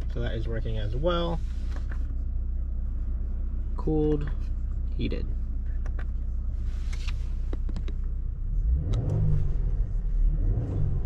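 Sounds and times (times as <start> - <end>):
car engine idling and revving: 0.0 - 11.0.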